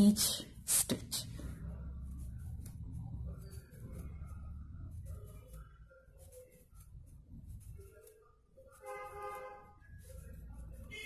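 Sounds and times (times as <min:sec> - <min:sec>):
low rumble: 0:01.3 - 0:05.2
faint horn tone: 0:08.6 - 0:09.9, 0:10.7 - 0:11.0.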